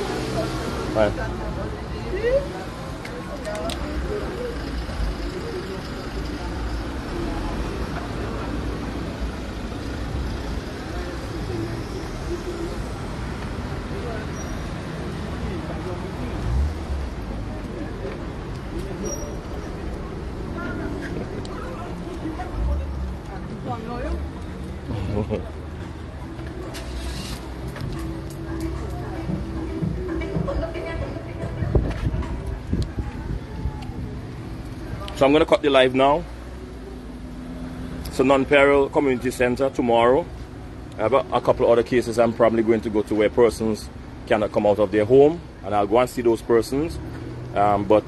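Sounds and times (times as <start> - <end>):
traffic rumble: 0.0 - 48.0.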